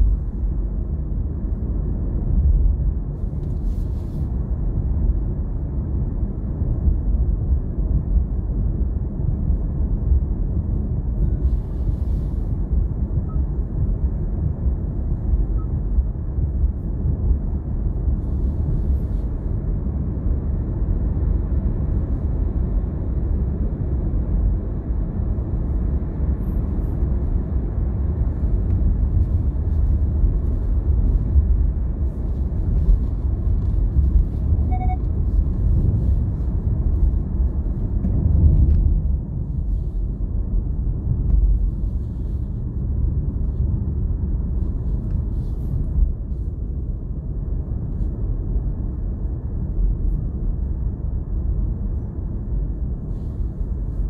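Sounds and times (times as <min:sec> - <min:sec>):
car driving interior rumble: 0:00.0 - 0:54.0.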